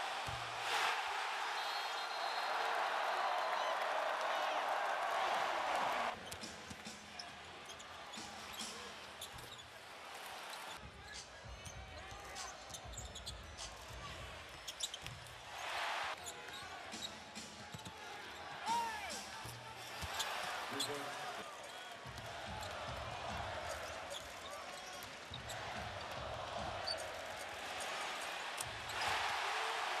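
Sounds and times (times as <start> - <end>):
crowd noise: 0.0 - 14.5, 15.4 - 30.0
sneakers squeaking: 6.2 - 9.7, 11.4 - 15.4.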